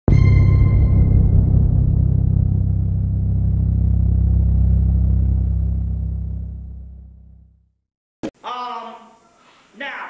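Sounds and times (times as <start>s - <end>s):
deep cinematic boom: 0.1s - 7.6s
low rumbling drone: 0.1s - 7.6s.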